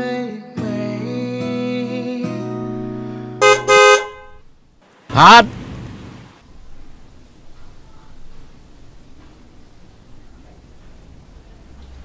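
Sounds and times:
soft music: 0.0s - 3.4s
car horn honking: 3.4s - 4.4s.

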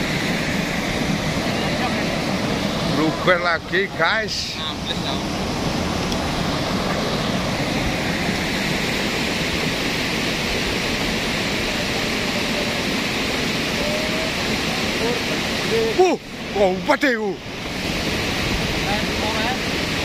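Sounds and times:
volcanic mudflow rushing: 0.0s - 20.0s.

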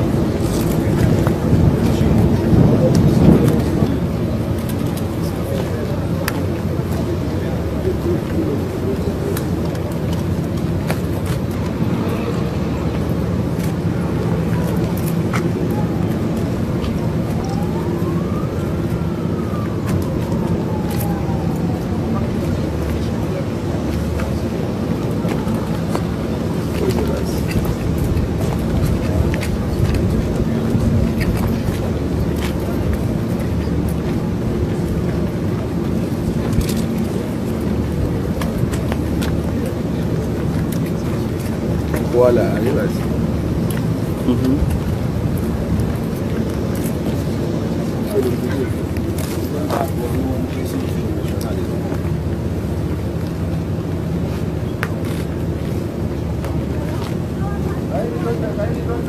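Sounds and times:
jet engines rumbling: 0.0s - 59.0s.

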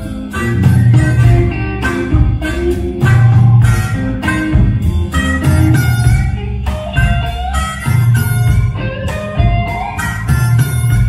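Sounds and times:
bass guitar: 0.0s - 11.0s
drums beating: 0.0s - 11.0s
electric guitar: 0.0s - 11.0s.

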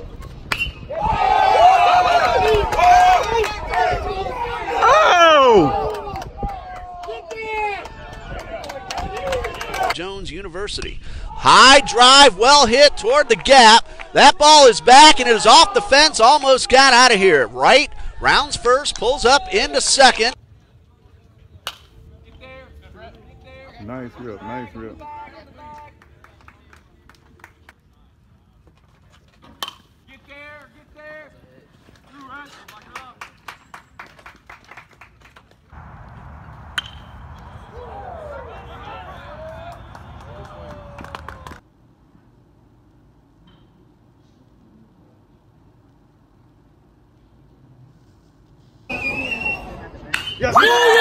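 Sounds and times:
voices of players and spectators: 0.0s - 33.2s, 36.6s - 40.9s
bat cracking on ball: 36.1s - 37.5s.

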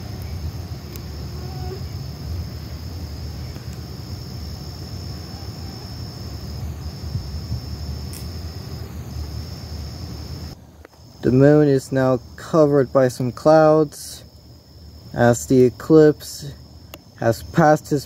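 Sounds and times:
crickets trilling: 0.0s - 18.0s.

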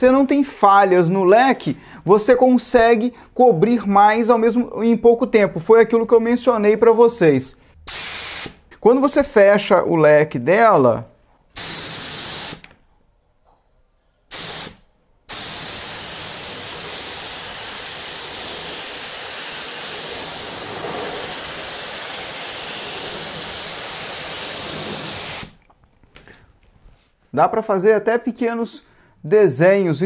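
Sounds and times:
spray gun air hiss: 7.9s - 8.6s, 11.6s - 12.6s, 14.3s - 25.6s.

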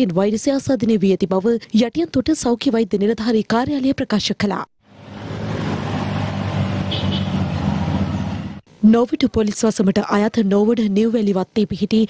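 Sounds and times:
vehicle engine running: 4.8s - 8.6s
road noise: 4.8s - 8.7s.

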